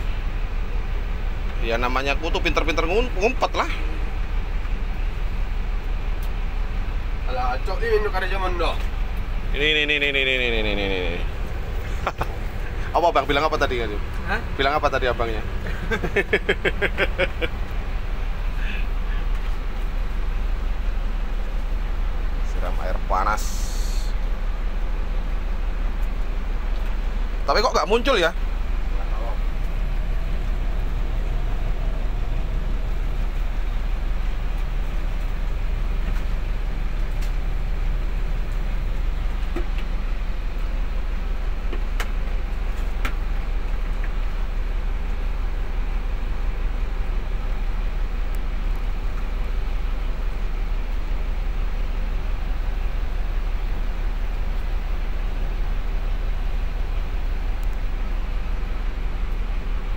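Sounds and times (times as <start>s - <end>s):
bus diesel engine idling: 0.0s - 59.9s.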